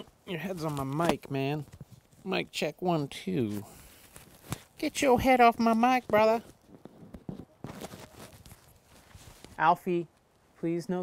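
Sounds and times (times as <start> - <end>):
clip-on microphone handling noise: 3.5 - 9.6.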